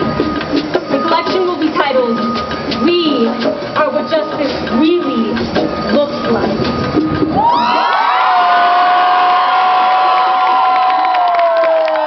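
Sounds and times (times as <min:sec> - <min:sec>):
crowd cheering: 0:07.3 - 0:12.0
crowd long held shouts: 0:07.4 - 0:12.0.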